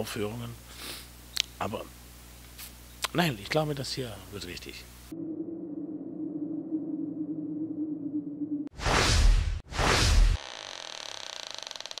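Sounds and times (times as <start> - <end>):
steady low tone: 5.1 - 8.7.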